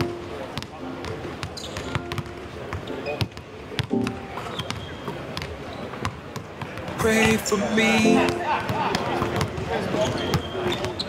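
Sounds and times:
basketballs bouncing on hardwood: 0:00.6 - 0:07.4.

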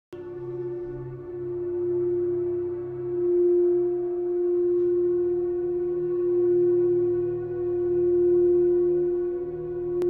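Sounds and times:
singing bowl ringing: 0:00.2 - 0:10.0.

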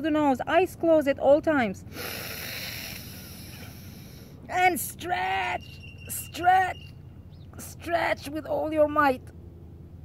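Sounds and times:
woman inhaling through nose: 0:01.9 - 0:04.4.

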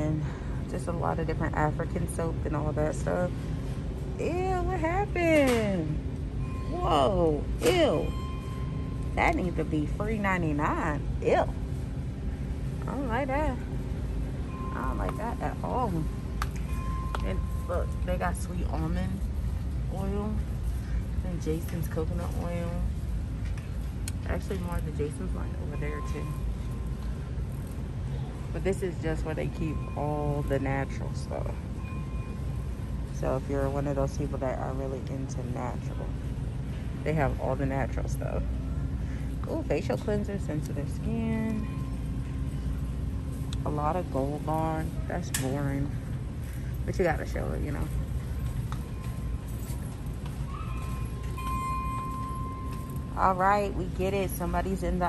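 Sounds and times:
low background rumble: 0:00.0 - 0:55.0.

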